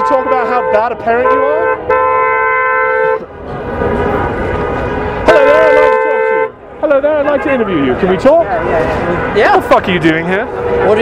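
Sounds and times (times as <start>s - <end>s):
car horns honking: 0.0s - 11.0s.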